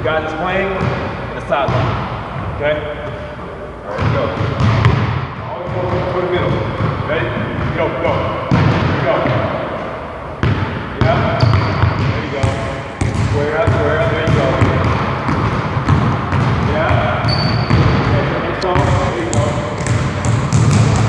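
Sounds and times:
basketball bouncing on hardwood: 4.0s - 7.8s, 8.5s - 9.4s, 10.4s - 21.0s
short high squeaks: 17.3s - 17.7s.

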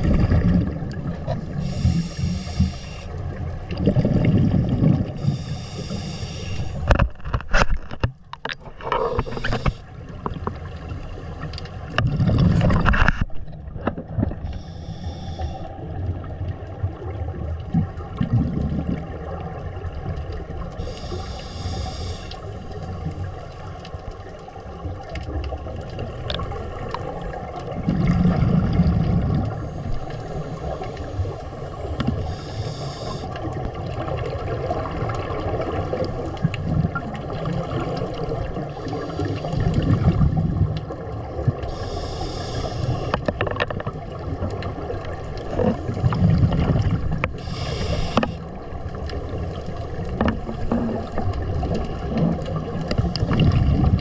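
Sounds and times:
exhaled bubbles rumbling: 0.0s - 21.0s, 22.4s - 54.0s
hissing regulator inhalations: 1.6s - 3.2s, 5.2s - 6.9s, 9.0s - 9.9s, 14.4s - 15.7s, 20.8s - 22.7s, 32.0s - 33.4s, 38.8s - 39.8s, 41.7s - 43.2s, 47.3s - 48.4s.

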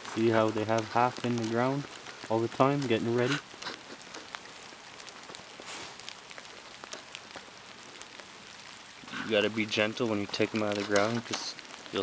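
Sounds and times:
rain on wet grass: 0.0s - 12.0s
raindrop ticks: 0.0s - 12.0s.

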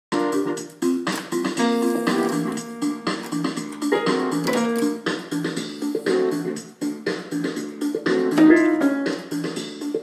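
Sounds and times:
electronic keyboard notes: 0.1s - 10.0s.

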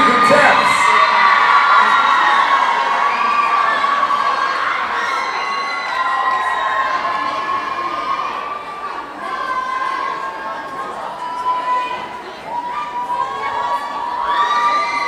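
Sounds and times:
crowd cheering and screaming: 0.0s - 15.0s.

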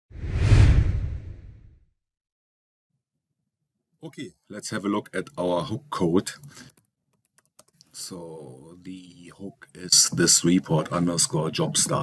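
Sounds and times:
whoosh with low rumble: 0.1s - 1.8s.

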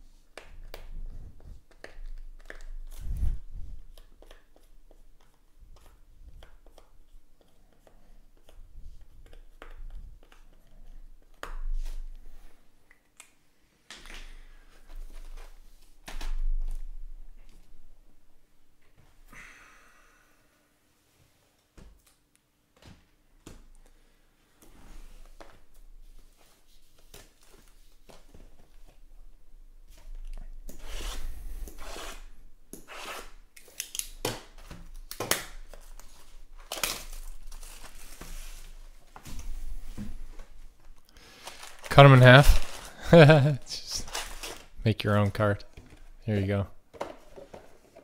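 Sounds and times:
tearing and crinkling wrap: 35.1s - 38.8s, 41.3s - 44.8s
cardboard rustling: 35.6s - 44.8s.

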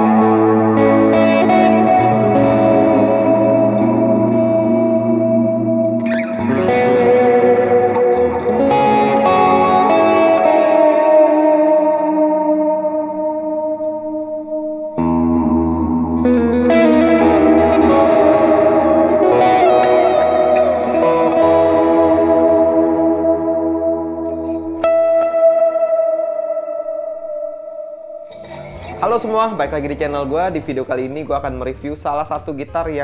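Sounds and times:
electric guitar through amplifier: 0.0s - 31.1s.

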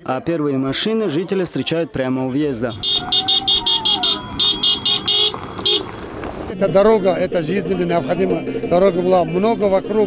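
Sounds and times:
car horn short beeps: 2.7s - 5.9s.

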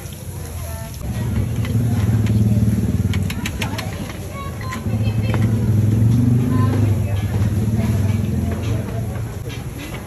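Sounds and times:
people's voices: 0.0s - 10.0s
vehicle engine running: 1.0s - 9.5s.

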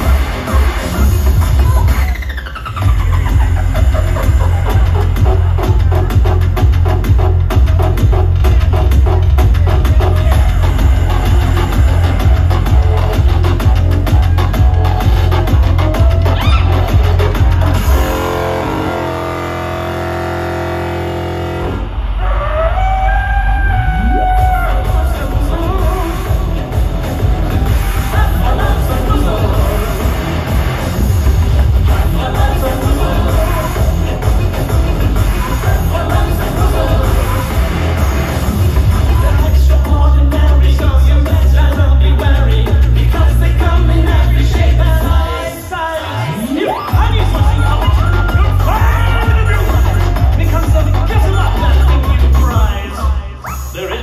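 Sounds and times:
bass beat: 0.0s - 45.7s, 46.5s - 54.0s
synth-pop music: 0.0s - 54.0s.

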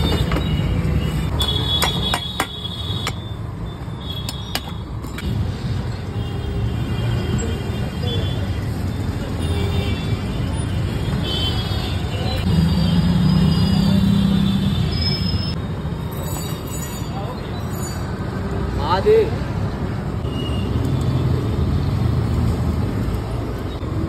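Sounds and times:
road traffic rumble: 0.0s - 24.0s.

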